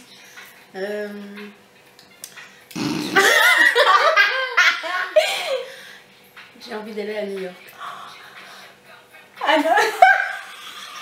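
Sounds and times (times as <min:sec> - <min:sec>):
women laughing: 0:03.2 - 0:05.8, 0:09.5 - 0:11.0.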